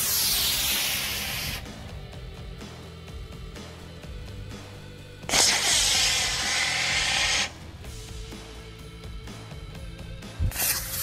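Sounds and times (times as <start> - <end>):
rocket motor igniting and burning: 0.0 - 1.7, 5.3 - 7.7.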